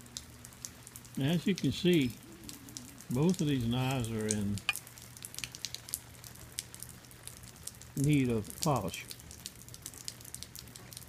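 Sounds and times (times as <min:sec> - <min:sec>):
faint low hum: 0:00.0 - 0:05.4
rain dripping: 0:00.0 - 0:11.0.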